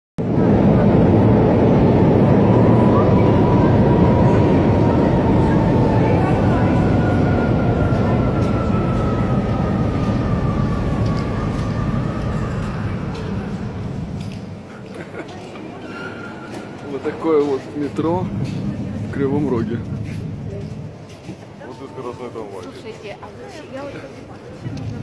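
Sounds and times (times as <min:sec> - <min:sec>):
tram rumbling with falling whine: 0:00.2 - 0:21.6.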